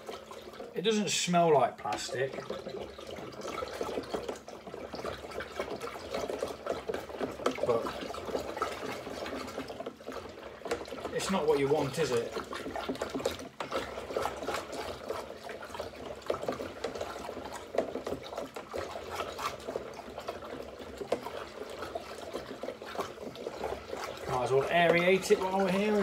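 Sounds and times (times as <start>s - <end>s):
liquid sloshing in a jug: 0.0s - 26.0s
spoon knocking and scraping jug: 5.7s - 26.0s.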